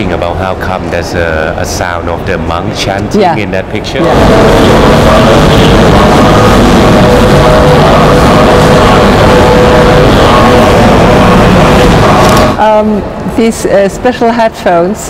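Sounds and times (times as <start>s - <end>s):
dense electrical buzz: 0.0s - 14.8s.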